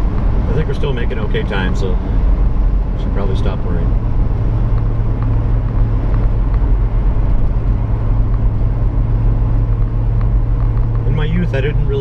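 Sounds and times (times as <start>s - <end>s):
low engine drone: 0.0s - 12.0s
road noise: 0.0s - 12.0s.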